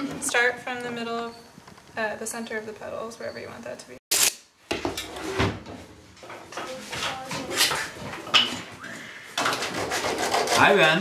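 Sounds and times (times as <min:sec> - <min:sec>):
objects knocking and clattering: 0:04.7 - 0:08.8, 0:09.4 - 0:10.0.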